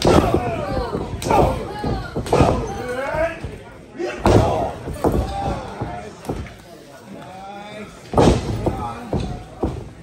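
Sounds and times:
people shouting: 0.0s - 3.2s.

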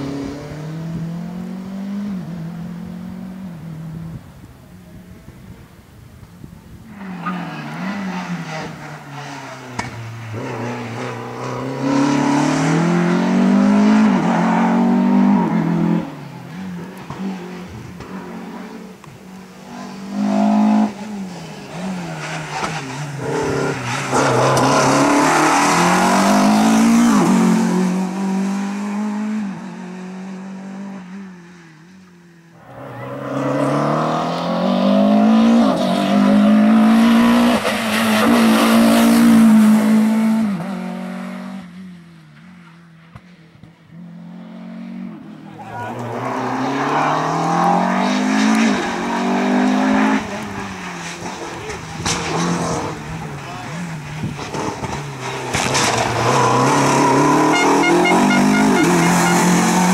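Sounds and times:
race car engine revving: 7.2s - 30.9s, 32.6s - 41.7s, 44.2s - 59.9s.

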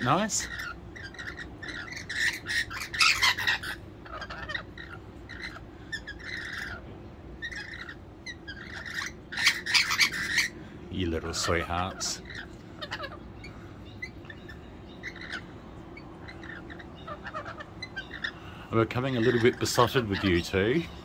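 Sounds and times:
lorikeets chattering: 0.0s - 21.0s.

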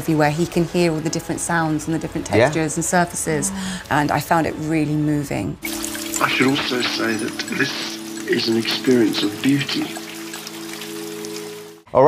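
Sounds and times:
rain falling on a table: 5.6s - 11.8s
held low musical chord: 5.6s - 11.9s.

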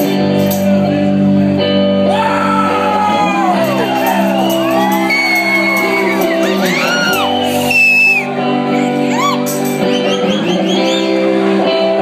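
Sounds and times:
live rock band chord: 0.0s - 12.0s
crowd shouts and whoops: 2.0s - 11.4s.

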